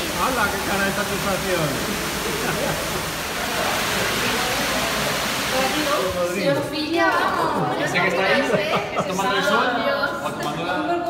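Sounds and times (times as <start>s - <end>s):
water rushing: 0.0s - 6.9s.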